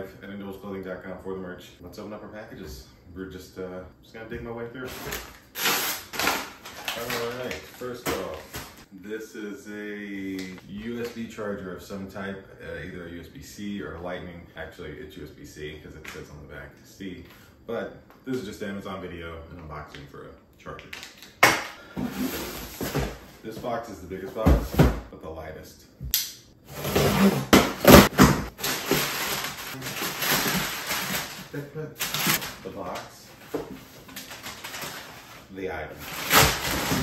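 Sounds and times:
paper bag crinkling: 0:04.9 - 0:08.8, 0:27.9 - 0:33.1, 0:33.9 - 0:37.0.

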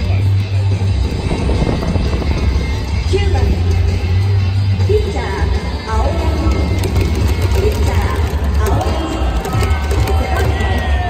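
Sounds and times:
music over loudspeakers: 0:00.0 - 0:11.0
deep low rumble: 0:00.7 - 0:04.9.

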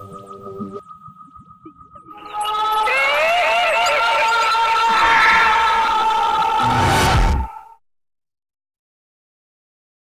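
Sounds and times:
wavering wailing tone: 0:00.0 - 0:07.2.

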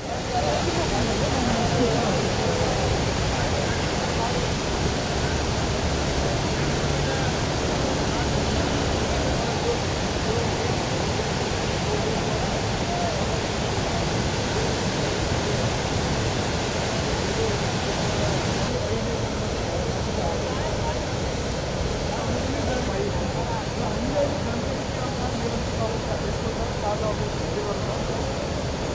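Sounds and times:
river rushing water: 0:00.0 - 0:28.9.

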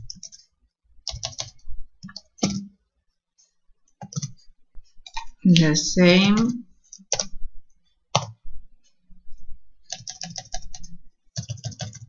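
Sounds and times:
computer keyboard typing: 0:00.0 - 0:02.6, 0:04.0 - 0:04.4, 0:06.2 - 0:07.3, 0:08.1 - 0:08.4, 0:09.9 - 0:12.0.

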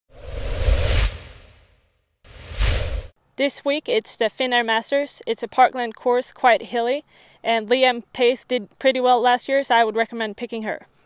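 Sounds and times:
whoosh sound effect: 0:00.1 - 0:03.1.

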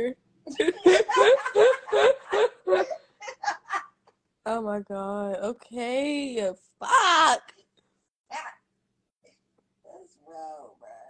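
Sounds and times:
woman laughing: 0:00.5 - 0:04.0.

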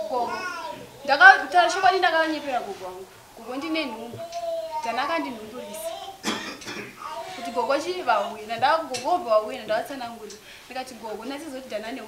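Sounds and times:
person speaking: 0:00.0 - 0:06.2, 0:07.0 - 0:12.0
person coughing: 0:06.2 - 0:07.6.

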